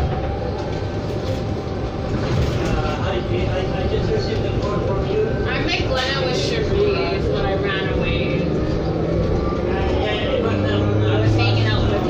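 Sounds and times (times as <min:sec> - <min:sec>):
bus low rumble: 0:00.0 - 0:12.0
people talking: 0:02.3 - 0:12.0.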